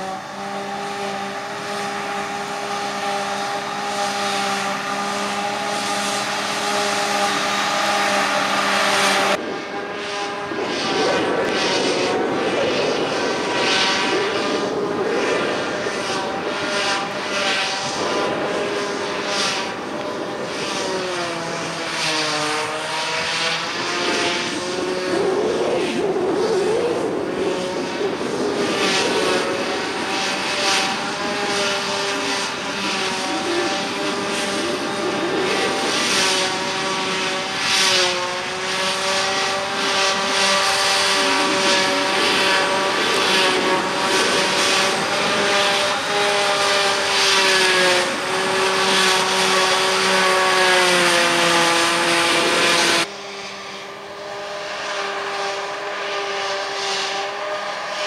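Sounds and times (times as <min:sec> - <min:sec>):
forage harvester droning: 0:00.0 - 0:58.0
tractor running: 0:00.0 - 0:58.0.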